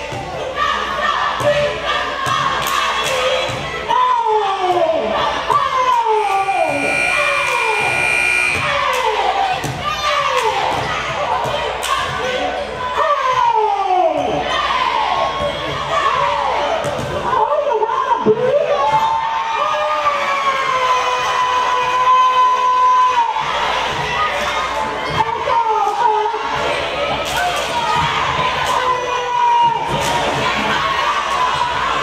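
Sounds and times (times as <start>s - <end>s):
crowd noise: 0.0s - 18.9s, 19.8s - 32.0s.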